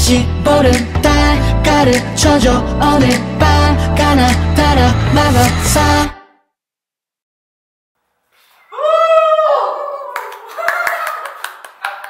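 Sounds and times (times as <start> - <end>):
high-pitched vocal cheer: 8.6 - 11.4
hand clapping: 10.2 - 12.0.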